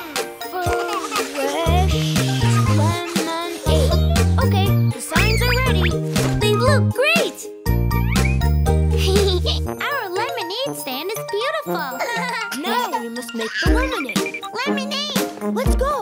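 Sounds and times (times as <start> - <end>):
children's voices: 0.0 - 7.5, 9.0 - 16.0
bouncy cartoon music: 0.0 - 16.0
bass line: 3.7 - 6.9.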